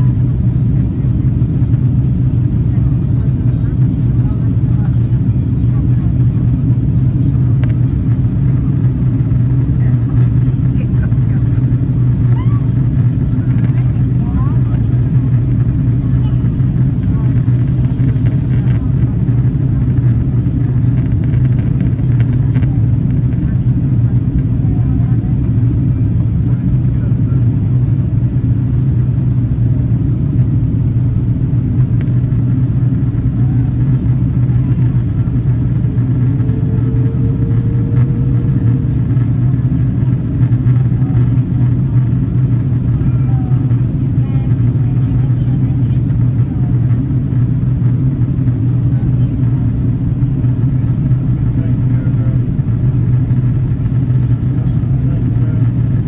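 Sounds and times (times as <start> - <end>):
airliner cabin engine drone: 0.0 - 56.0.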